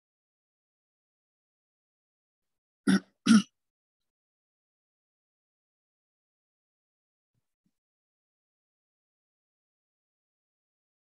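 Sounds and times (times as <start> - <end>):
person clearing throat: 2.9 - 3.6.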